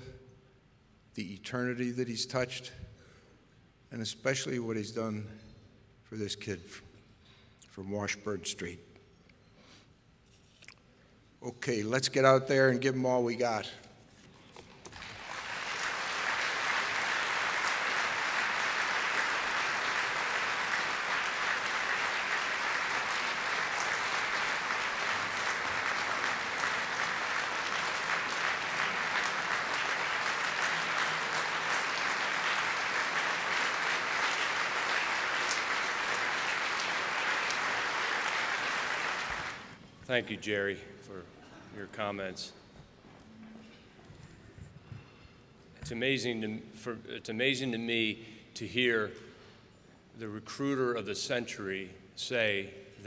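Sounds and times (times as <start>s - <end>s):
large audience applauding: 14.8s - 39.8s.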